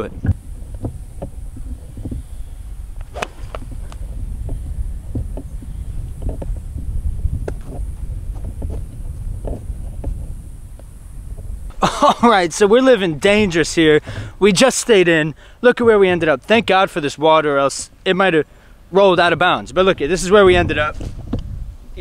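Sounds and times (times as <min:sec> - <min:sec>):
wind rumbling on microphone: 0:00.0 - 0:15.0, 0:18.8 - 0:22.0
golf club striking ball: 0:00.3 - 0:05.6.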